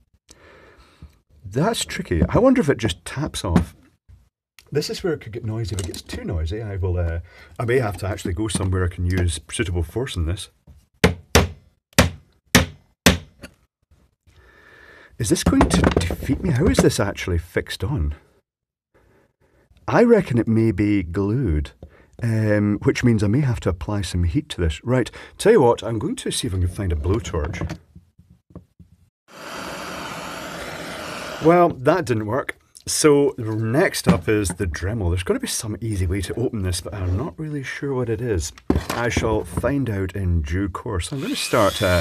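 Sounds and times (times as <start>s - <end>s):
blowtorch flame hissing: 29.3s - 31.5s.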